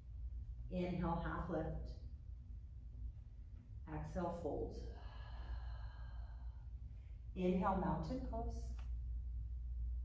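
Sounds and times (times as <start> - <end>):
low room hum: 0.0 - 10.0
person exhaling: 4.9 - 6.7.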